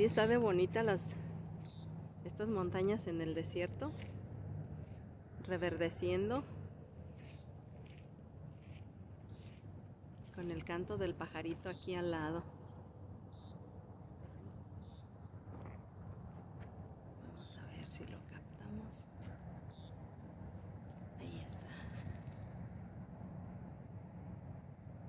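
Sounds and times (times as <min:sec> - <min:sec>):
steady low rumble: 0:00.0 - 0:25.0
small songbird singing: 0:14.8 - 0:15.1.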